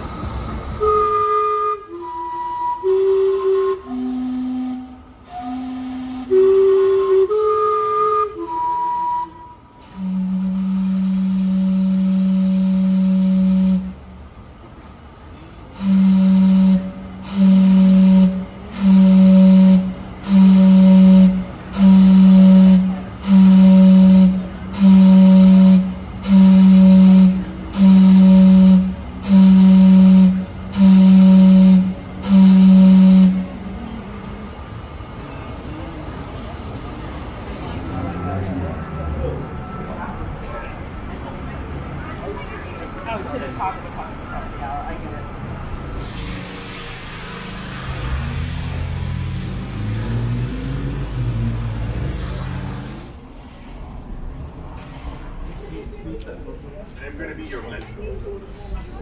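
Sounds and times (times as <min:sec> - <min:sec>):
low steam whistle blast: 0:00.7 - 0:14.2, 0:15.7 - 0:33.8, 0:45.8 - 0:53.2
steam whistle chime tune: 0:00.8 - 0:13.8
short steam whistle blasts: 0:00.8 - 0:14.1, 0:15.8 - 0:33.7, 0:45.9 - 0:53.2
steam hiss: 0:45.8 - 0:53.2.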